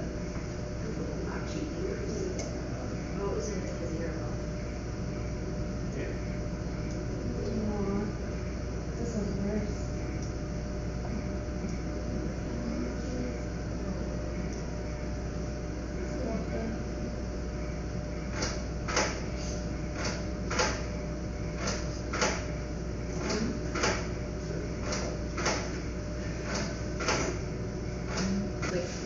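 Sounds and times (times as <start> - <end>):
steady low hum: 0.0 - 29.0
sharp clicks in pairs: 18.4 - 19.2.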